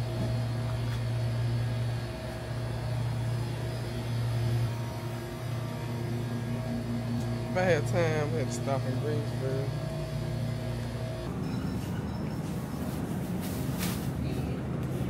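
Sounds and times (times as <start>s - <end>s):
low hum of shop ambience: 0.0s - 15.0s.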